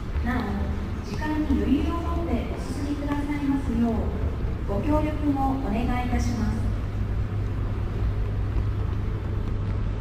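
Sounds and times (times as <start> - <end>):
low rumble of terminal ambience: 0.0 - 10.0
public address announcement: 0.0 - 10.0.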